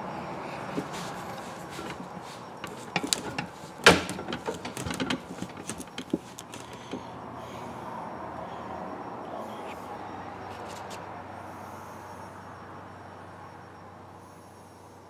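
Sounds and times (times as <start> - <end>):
rod grip creaking and knocking: 0.7 - 7.1.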